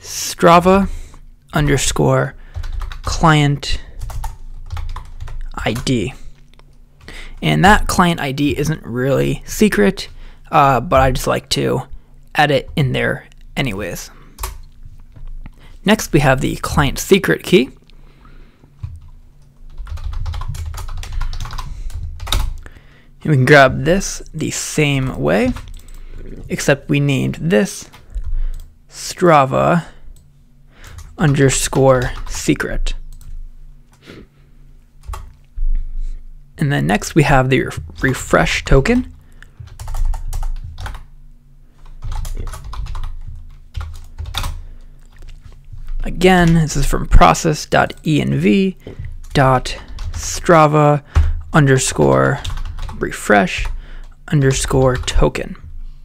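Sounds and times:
faint low hum: 0.0 - 56.0
typing on computer keyboard: 2.5 - 3.1, 4.0 - 5.9, 14.4 - 15.3, 18.8 - 22.7, 39.6 - 41.1, 42.0 - 45.3, 52.1 - 53.0.

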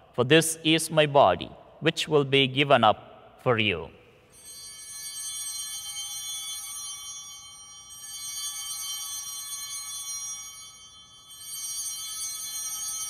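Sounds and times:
altar bells ringing: 4.2 - 13.0.

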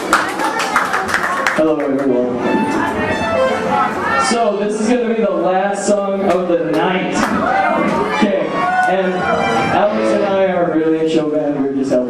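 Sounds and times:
live rock band playing: 2.3 - 4.8, 7.4 - 11.1
voice over music: 8.3 - 11.1.

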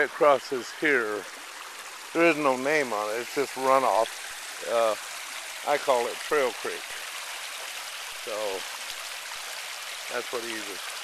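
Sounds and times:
creek water flowing over rocks: 0.0 - 11.0.

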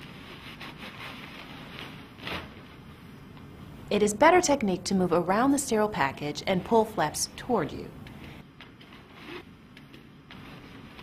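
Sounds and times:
low steady background hiss: 2.6 - 8.4.

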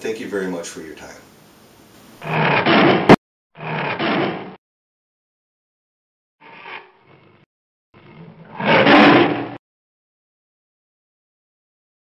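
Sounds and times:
big cat roaring: 2.2 - 4.6, 6.4 - 9.6.

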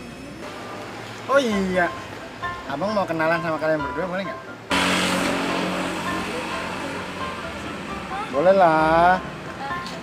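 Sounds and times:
passing vehicle engine and tyres: 4.6 - 10.0.

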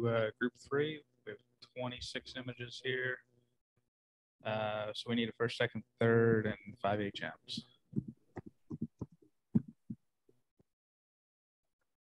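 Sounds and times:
soft irregular thumps: 7.9 - 10.0.

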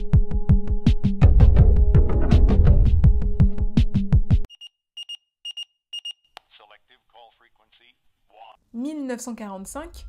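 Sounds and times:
alarm clock double beeps: 4.5 - 6.2.

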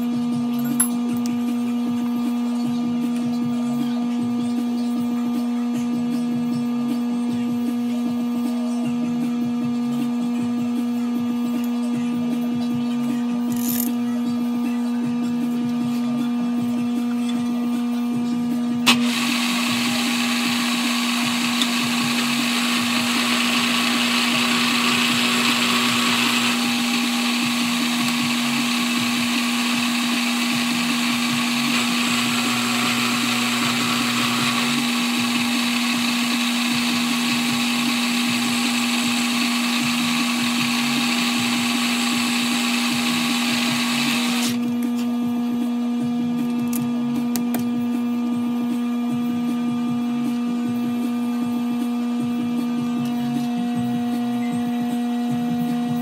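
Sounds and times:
end mill cutting metal: 18.9 - 44.6
milling machine spindle hum: 18.9 - 44.6.

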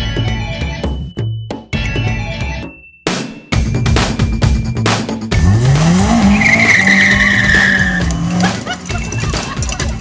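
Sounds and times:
car engine revving: 5.3 - 9.8
tyres squealing: 5.7 - 10.0.

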